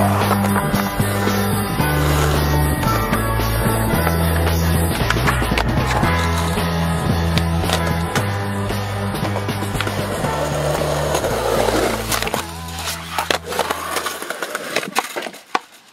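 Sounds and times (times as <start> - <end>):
music with bass line: 0.0 - 13.7
skateboard clacking and knocking: 0.0 - 15.9
skateboard wheels rolling on concrete: 0.0 - 15.9.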